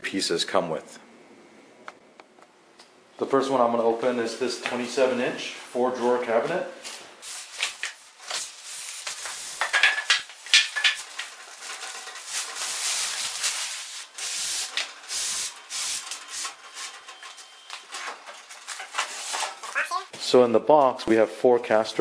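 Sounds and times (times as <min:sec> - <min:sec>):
cardboard scraping and rustling: 0:16.7 - 0:19.8.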